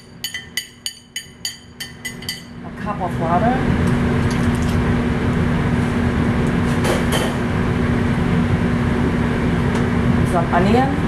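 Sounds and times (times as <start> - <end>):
kitchen ventilation: 0.0 - 11.0
gas wok burner roaring: 2.7 - 11.0.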